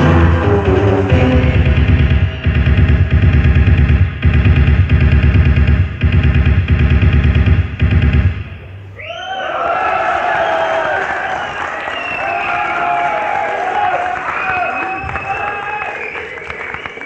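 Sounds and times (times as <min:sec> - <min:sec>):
industrial electronic music: 0:00.0 - 0:09.0
audience cheering: 0:09.0 - 0:17.0.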